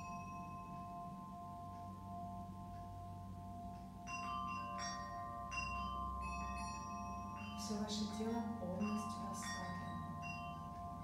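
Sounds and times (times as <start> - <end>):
meditative bell-like music: 0.0 - 11.0.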